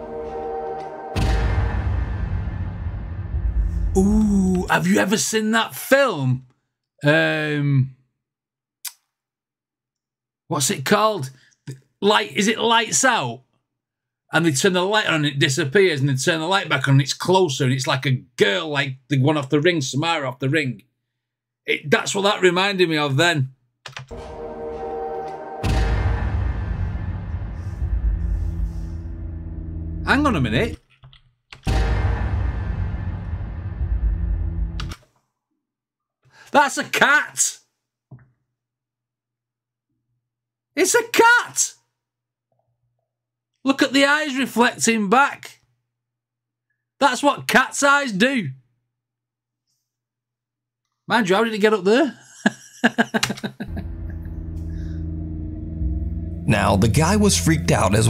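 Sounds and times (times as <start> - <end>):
low droning video sound: 24.2 - 30.2, 31.7 - 34.8, 53.7 - 58.0.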